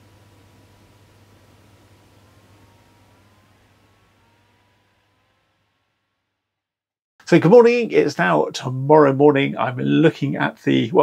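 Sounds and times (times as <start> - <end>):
faint low hum and hiss: 0.0 - 6.2, 7.2 - 11.0.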